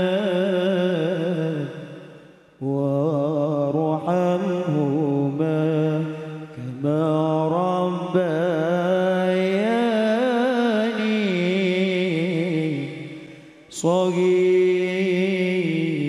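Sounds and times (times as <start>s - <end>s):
man singing devotional chant: 0.0s - 16.0s.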